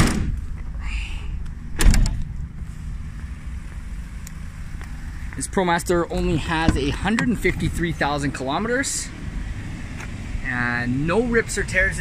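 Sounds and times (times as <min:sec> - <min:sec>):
steady low rumble: 0:00.0 - 0:12.0
metal van doors slamming: 0:01.7 - 0:02.2.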